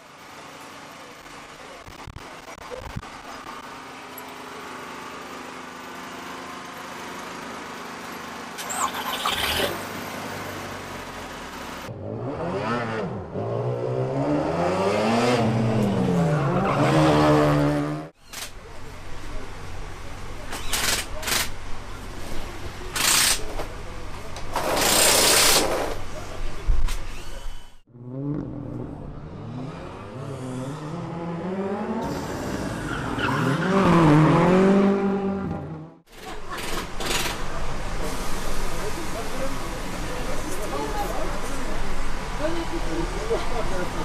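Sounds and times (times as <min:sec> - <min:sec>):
rally car engine revving: 0:11.9 - 0:18.2, 0:27.9 - 0:38.2.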